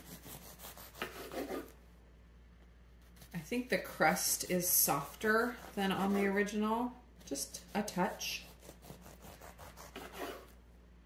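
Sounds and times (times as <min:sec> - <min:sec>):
bread knife sawing loaf: 0:00.0 - 0:01.7, 0:04.8 - 0:06.5, 0:07.7 - 0:10.5.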